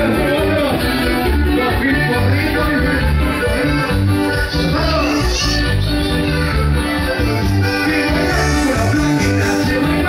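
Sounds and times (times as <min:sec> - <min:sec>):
accordion band dance music: 0:00.0 - 0:10.0.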